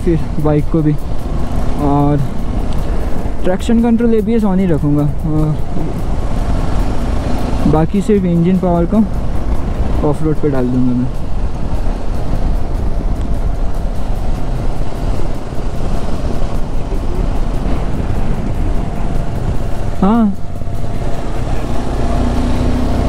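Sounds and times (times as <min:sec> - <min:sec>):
motorcycle engine running: 0:00.0 - 0:23.0
wind rushing over microphone: 0:00.0 - 0:23.0.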